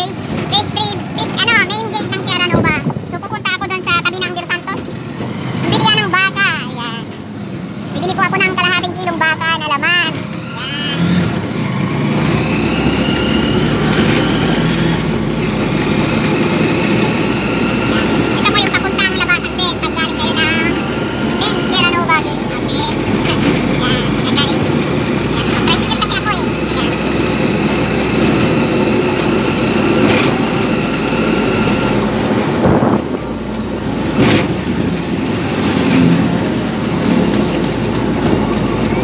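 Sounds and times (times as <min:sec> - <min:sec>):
voices: 0:00.0 - 0:07.2, 0:07.8 - 0:32.5, 0:35.0 - 0:39.0
vehicle engine running: 0:00.0 - 0:39.0.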